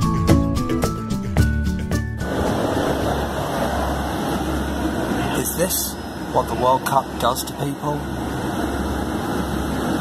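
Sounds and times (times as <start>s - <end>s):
idling vehicle engines: 2.2s - 10.0s
traffic noise: 2.2s - 10.0s.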